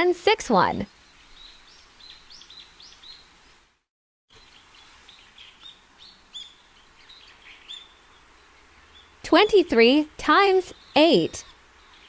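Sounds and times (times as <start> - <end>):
background hiss: 0.0 - 12.0
birds chirping: 0.5 - 3.6, 4.3 - 12.0.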